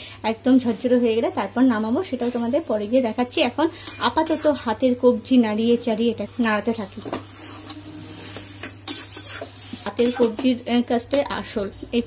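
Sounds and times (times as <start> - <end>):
food sizzling in a pan: 3.6 - 10.6
metal spatula scraping a pan: 3.8 - 4.7, 7.1 - 10.4.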